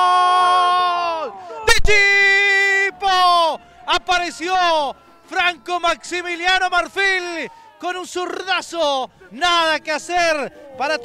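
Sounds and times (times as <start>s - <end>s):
commentator shouting goal cry: 0.0s - 11.0s.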